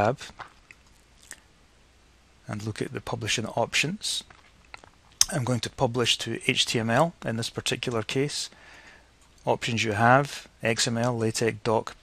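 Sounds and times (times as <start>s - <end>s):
man speaking: 0.0s - 0.4s, 2.5s - 4.3s, 5.2s - 8.5s, 9.4s - 12.0s.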